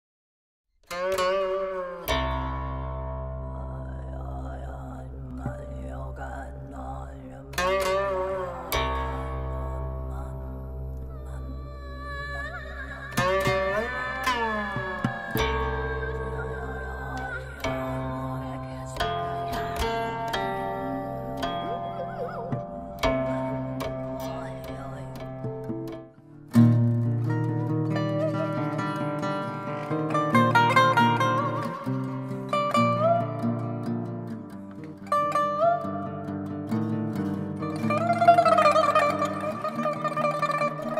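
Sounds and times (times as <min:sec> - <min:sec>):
plucked zither notes sliding: 0:04.2 - 0:34.1, 0:37.2 - 0:40.9.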